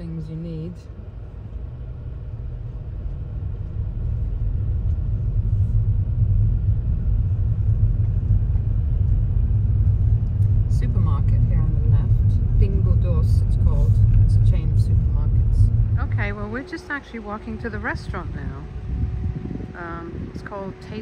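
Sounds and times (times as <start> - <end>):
tyres rumbling on cobblestones: 0.0 - 21.0.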